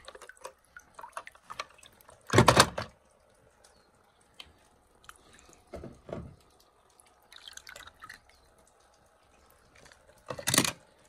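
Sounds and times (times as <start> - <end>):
small splashes and drips: 0.0 - 11.0.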